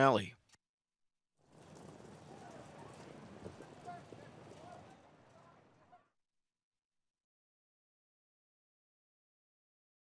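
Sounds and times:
horse hoofbeats: 1.5 - 6.1.

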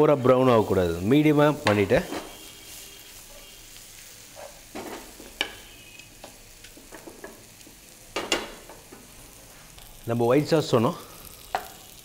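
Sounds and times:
vegetables sizzling in oil: 0.0 - 12.0
spatula scraping and knocking pan: 1.6 - 2.4.

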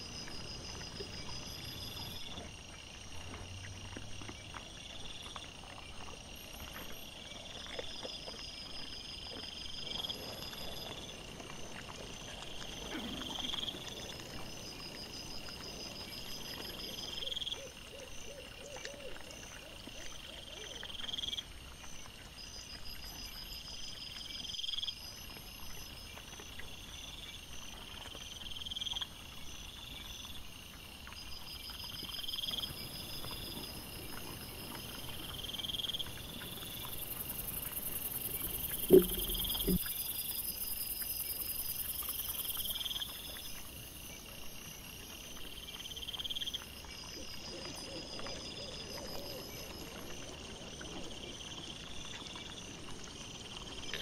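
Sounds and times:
night insects chirping: 0.0 - 54.0
insect trilling: 32.4 - 43.2.

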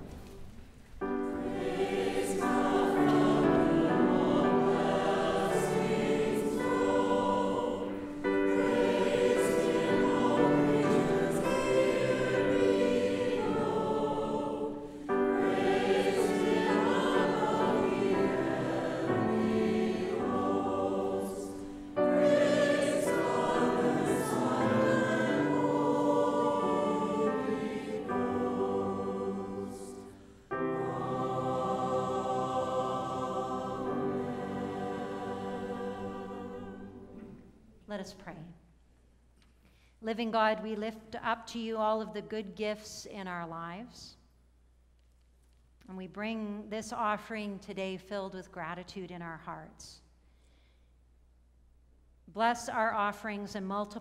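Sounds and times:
church choir singing a hymn: 1.0 - 37.7.

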